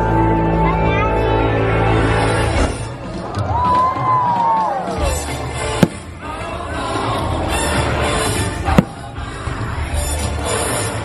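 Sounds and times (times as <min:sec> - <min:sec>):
fireworks bangs: 0:05.7 - 0:06.3, 0:08.7 - 0:09.2.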